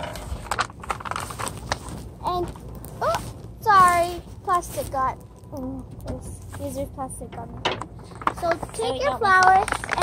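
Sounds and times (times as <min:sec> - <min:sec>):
plastic bag crinkling: 0:00.0 - 0:04.0, 0:08.0 - 0:10.0.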